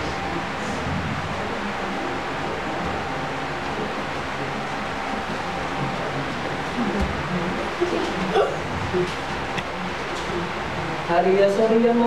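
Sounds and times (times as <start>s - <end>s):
electric fan running: 0.0s - 12.0s.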